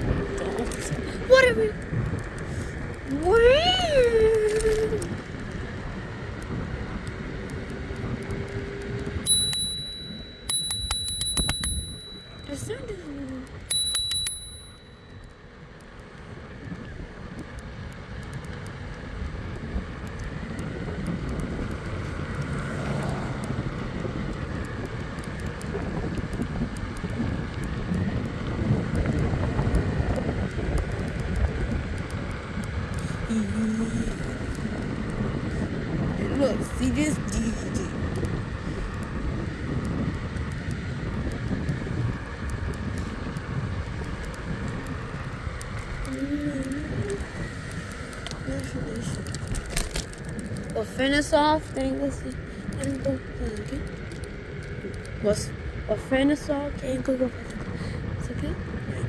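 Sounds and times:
scooter wind and rolling noise: 0:00.0 - 0:59.0
scooter bell dings: 0:09.2 - 0:12.9, 0:13.5 - 0:15.4.

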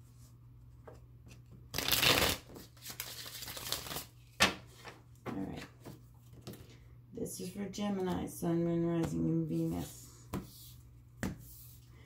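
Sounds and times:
cards being shuffled: 0:01.7 - 0:04.9.

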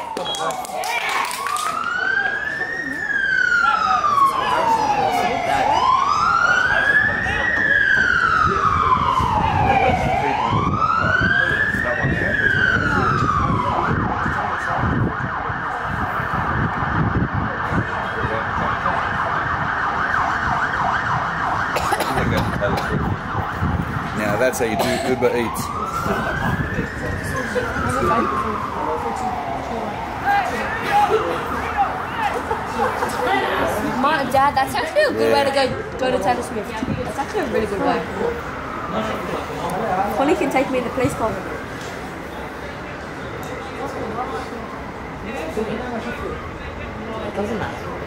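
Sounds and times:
siren fast yelp: 0:00.0 - 0:21.8, 0:23.1 - 0:32.4
emergency siren wailing: 0:00.0 - 0:48.0.

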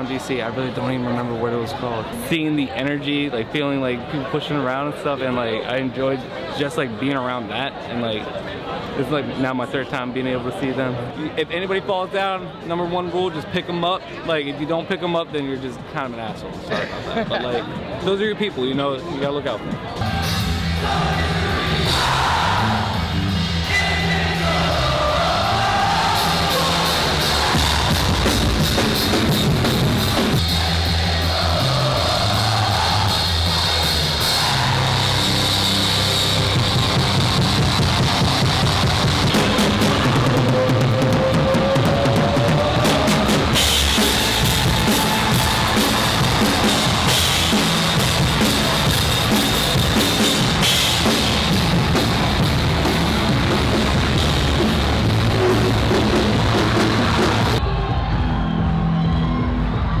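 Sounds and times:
pounding drum kit: 0:19.7 - 1:00.0
distorted electric guitar: 0:26.1 - 0:57.8.

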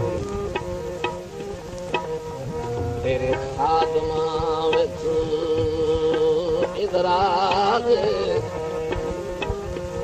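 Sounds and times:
reedy wind instrument melody: 0:00.0 - 0:05.5
hand drum strokes: 0:00.0 - 0:07.9.

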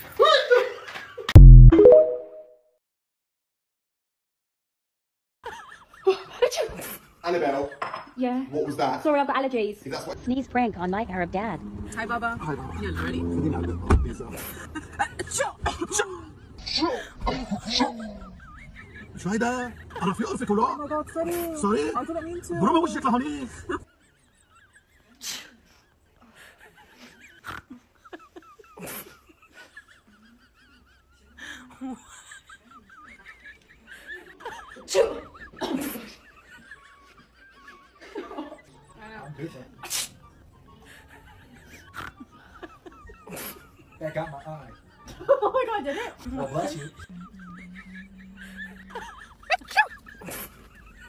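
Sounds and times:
fake sneeze: 0:39.8 - 0:40.2.

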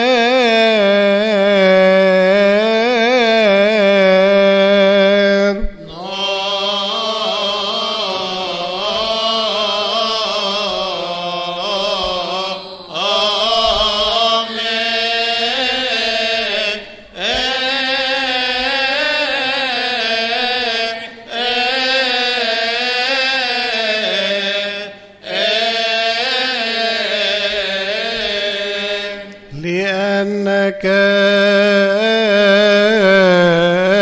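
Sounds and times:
man chanting a hymn: 0:00.0 - 0:34.0.

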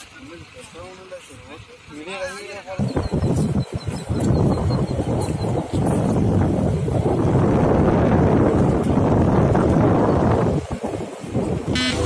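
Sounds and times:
engine and road noise: 0:00.0 - 0:12.0
wind buffeting microphone: 0:02.0 - 0:12.0.

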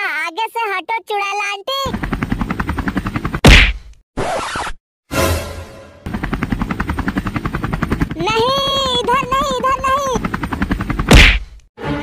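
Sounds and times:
helicopter rotor chop: 0:01.8 - 0:04.0, 0:06.0 - 0:11.7.

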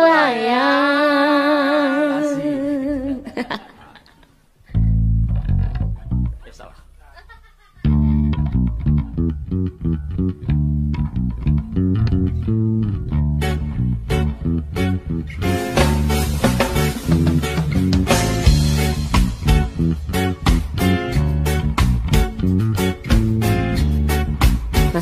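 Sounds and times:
band with bass and guitar: 0:04.7 - 0:07.0, 0:07.8 - 0:25.0.

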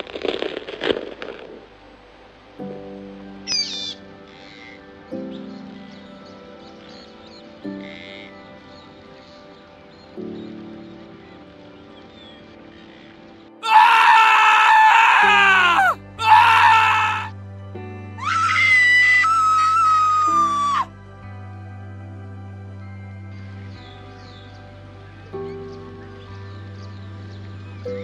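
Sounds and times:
soft background music: 0:00.0 - 0:28.0
loud screams: 0:13.6 - 0:17.3, 0:18.2 - 0:20.9.

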